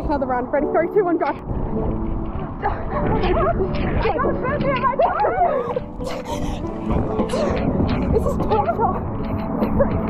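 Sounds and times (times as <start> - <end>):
wind rumble on microphone: 0.0 - 10.0
women yelping and wailing: 2.6 - 9.1.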